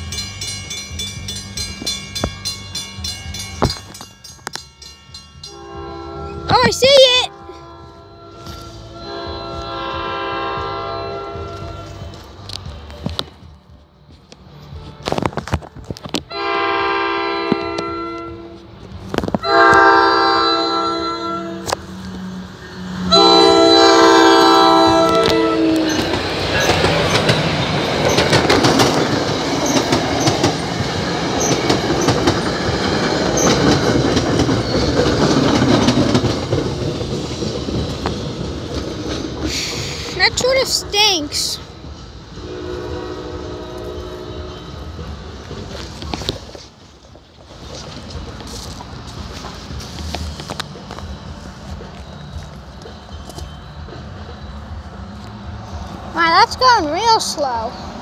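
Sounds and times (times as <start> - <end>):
train wheels rumbling on rails: 0.0 - 58.0
train air horn blasts: 5.5 - 12.1, 16.3 - 18.7, 19.4 - 21.8, 23.0 - 26.1, 42.4 - 45.0.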